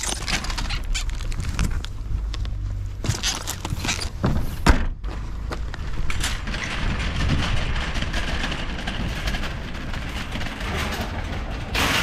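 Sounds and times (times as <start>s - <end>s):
shopping cart rattling over paving: 0.0s - 2.2s, 5.2s - 12.0s
metallic clatter of carts: 5.1s - 12.0s.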